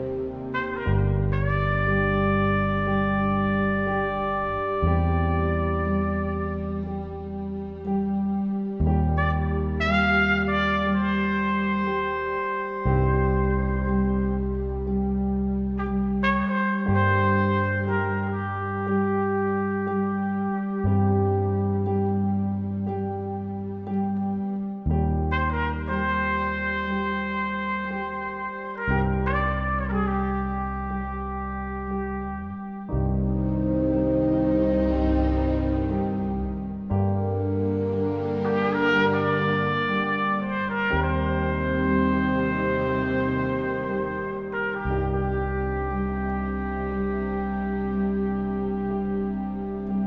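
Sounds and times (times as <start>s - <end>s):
held low bass notes: 0.0s - 50.0s
jazz trumpet: 0.0s - 50.0s
sustained accompaniment: 0.0s - 50.0s.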